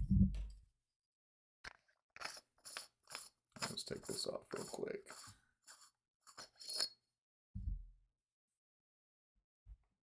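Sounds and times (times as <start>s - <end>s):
dull low thump: 0.0s - 0.6s
metal clinking and scraping: 6.3s - 7.0s.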